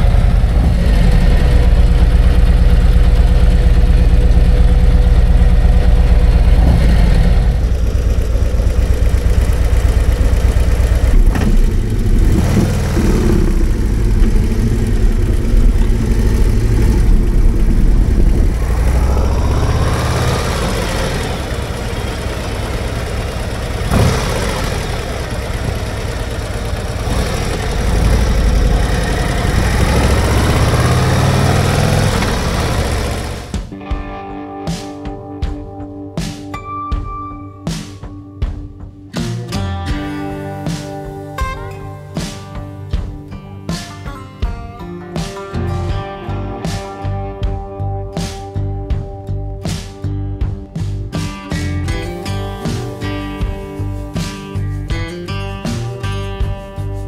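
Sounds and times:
motorcycle engine idling: 0.0 - 33.7, 51.6 - 55.1
motorcycle accelerating: 0.0 - 33.8, 39.2 - 44.1, 45.2 - 57.0.

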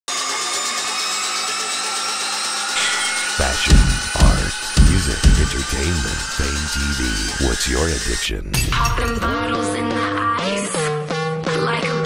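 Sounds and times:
harsh electronic noise drone: 0.3 - 8.5
held high electronic tones: 2.8 - 8.4.

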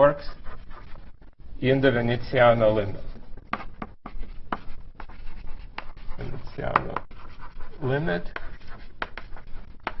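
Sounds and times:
chalk strokes on blackboard: 0.1 - 1.2, 2.5 - 10.0.

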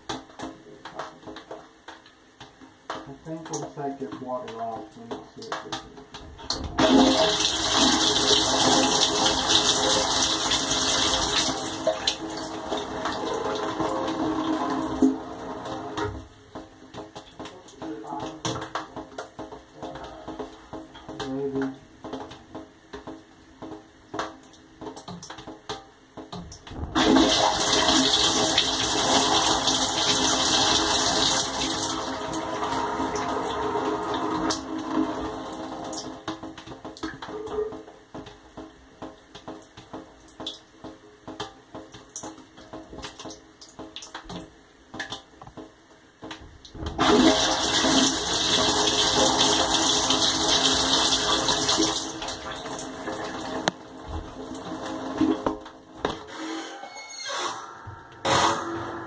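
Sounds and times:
water drips and clicks: 0.0 - 6.7, 15.9 - 27.0, 35.5 - 47.0
dishwasher water spraying: 26.7 - 35.5.

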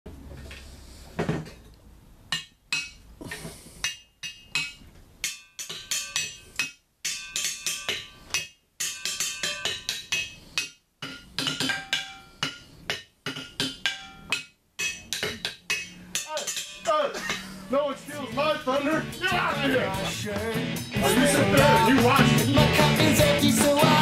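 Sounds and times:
sharp knocks and ringing clinks: 3.9 - 17.7.

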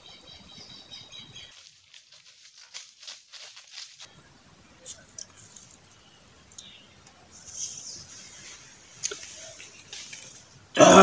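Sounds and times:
footsteps on dry leaves: 1.4 - 4.3.

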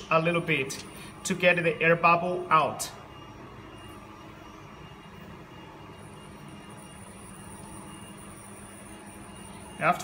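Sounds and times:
faint high whine: 0.0 - 10.0
workshop machine hum: 0.0 - 10.0.

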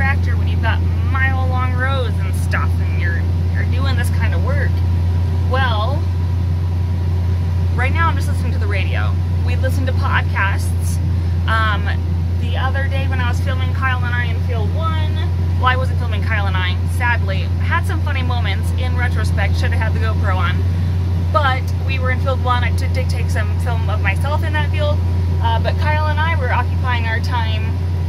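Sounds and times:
woman talking: 0.0 - 4.9, 5.5 - 6.1, 7.7 - 27.8
tractor engine drone: 0.0 - 28.0.

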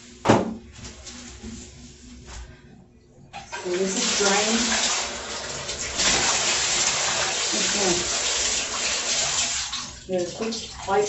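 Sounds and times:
faucet water rushing into tub: 3.4 - 11.0.

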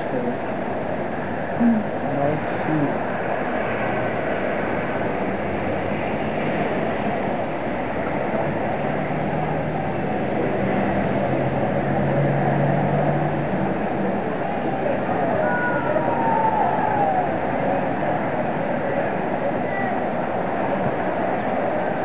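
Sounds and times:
steady rushing noise: 0.0 - 22.0.

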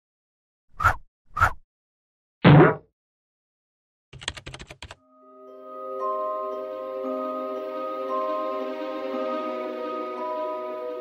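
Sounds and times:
keyboard typing: 4.2 - 5.0.

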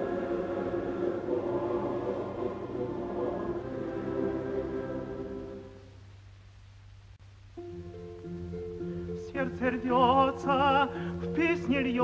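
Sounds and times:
orchestra playing sustained chords: 0.0 - 5.9, 7.6 - 12.0.

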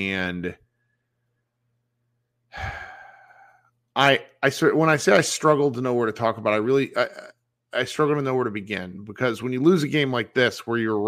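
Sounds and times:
man sighing: 2.5 - 3.7.

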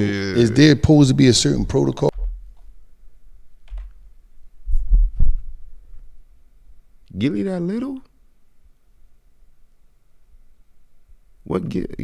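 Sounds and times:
dull low thumps: 4.6 - 5.7.

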